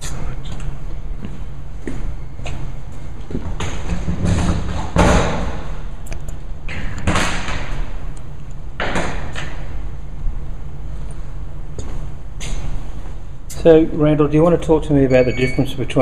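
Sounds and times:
low hum: 0:07.7 - 0:16.0.

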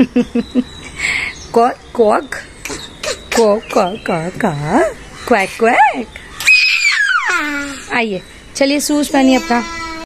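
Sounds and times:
child's high-pitched squeal: 0:06.4 - 0:07.9
child calling: 0:06.4 - 0:08.0, 0:09.2 - 0:10.0.

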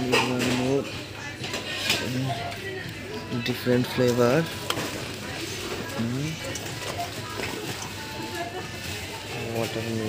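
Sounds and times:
background music: 0:00.0 - 0:10.0
faint voices: 0:00.0 - 0:10.0.

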